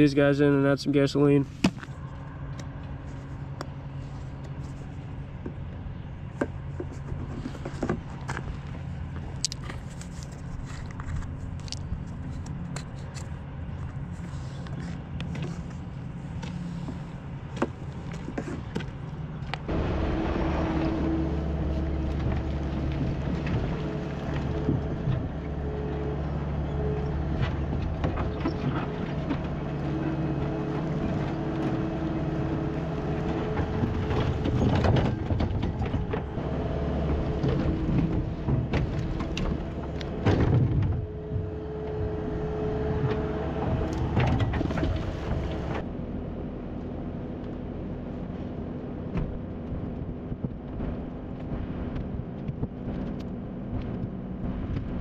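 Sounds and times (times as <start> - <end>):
diesel engine under load: 0.0 - 55.0
hydraulic whine: 19.7 - 45.9.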